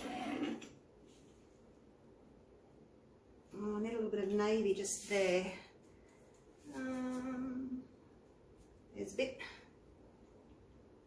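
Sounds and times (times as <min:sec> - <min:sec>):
woman humming: 0:06.6 - 0:08.0.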